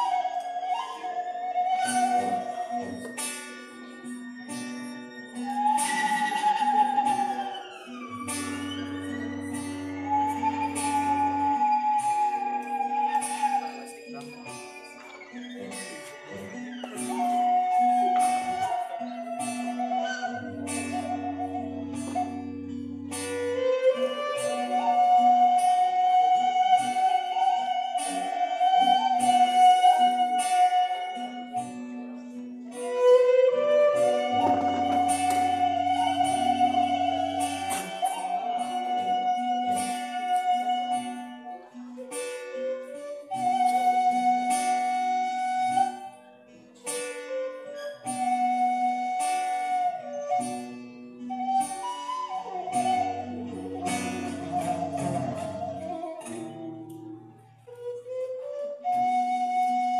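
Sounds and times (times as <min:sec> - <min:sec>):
violin melody: 0:00.0 - 0:46.0
acoustic guitar accompaniment: 0:00.0 - 0:59.9.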